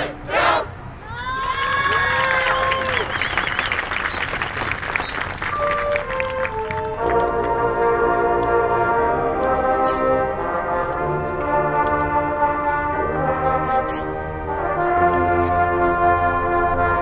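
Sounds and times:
marching band brass chords: 0:00.0 - 0:00.9, 0:03.0 - 0:17.0
audience cheering and applauding: 0:01.0 - 0:07.3.

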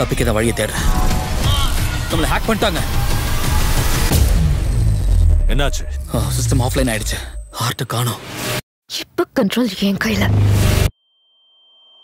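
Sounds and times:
trailer music: 0:00.0 - 0:08.6, 0:10.1 - 0:11.0.

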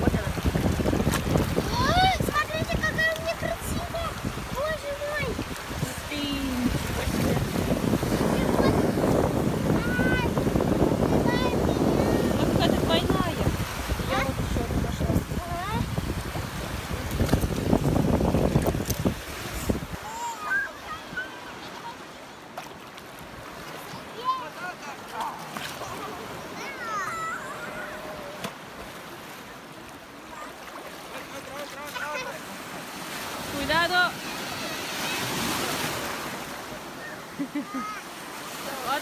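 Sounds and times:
voices of bathers: 0:00.0 - 0:18.4, 0:19.4 - 0:22.6, 0:23.2 - 0:39.0
wind buffeting microphone: 0:00.0 - 0:20.1
sea waves breaking in shallow surf: 0:00.0 - 0:39.0.

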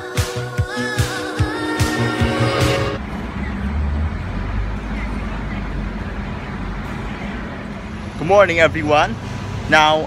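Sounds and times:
low rumble of road traffic: 0:03.0 - 0:10.0.

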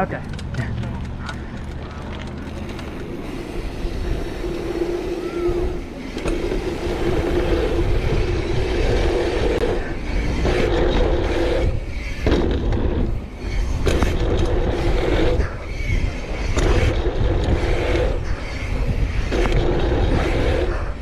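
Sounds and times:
tyres rolling on dirt: 0:00.0 - 0:05.1
bike freehub buzzing: 0:01.0 - 0:21.0
wind on microphone: 0:02.8 - 0:21.0.

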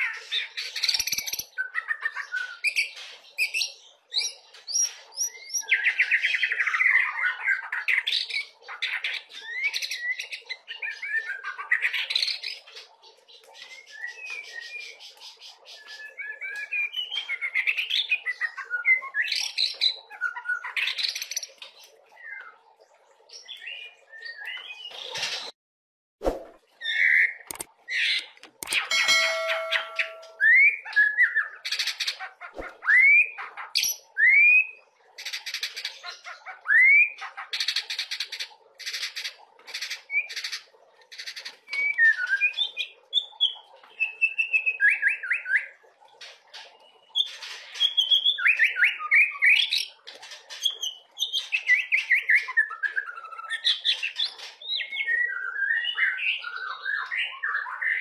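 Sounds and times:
songbird singing whistles and trills: 0:13.6 - 0:21.3, 0:54.8 - 0:58.0
sharp clicks: 0:27.5 - 0:27.7, 0:28.4 - 0:28.9.

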